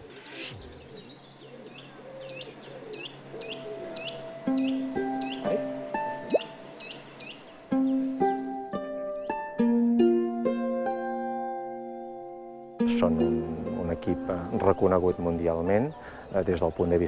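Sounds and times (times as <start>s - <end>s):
small birds chirping: 0.0s - 9.6s, 11.7s - 17.0s.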